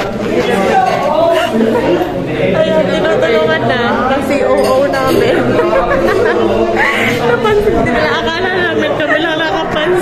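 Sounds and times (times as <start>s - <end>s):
crowd chatter in large room: 0.0s - 10.0s.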